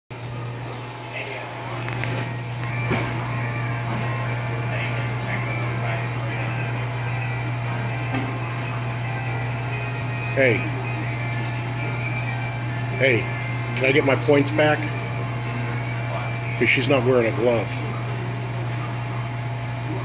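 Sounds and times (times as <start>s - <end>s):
steady low hum: 0.1s - 20.0s
distant voices: 0.2s - 20.0s
faint background music: 0.2s - 20.0s.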